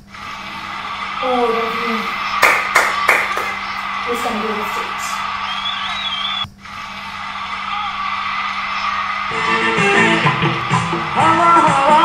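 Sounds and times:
steady hum: 0.0s - 12.0s
hand claps: 2.4s - 3.6s.

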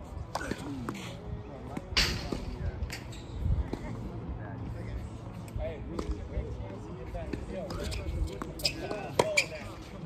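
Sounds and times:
tennis ball hits and bounces: 7.2s - 9.7s.

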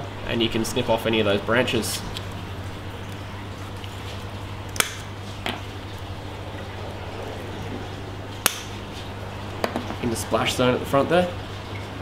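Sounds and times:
steady low hum: 0.0s - 12.0s
coral branches snapping: 4.7s - 5.1s, 8.4s - 8.8s.

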